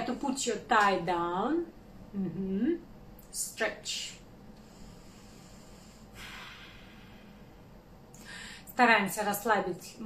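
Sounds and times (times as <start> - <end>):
woman breathing out: 4.6 - 8.7.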